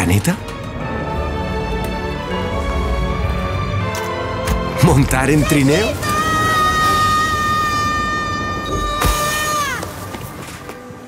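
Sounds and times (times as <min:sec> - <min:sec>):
child screaming slowed down: 0:05.4 - 0:10.2.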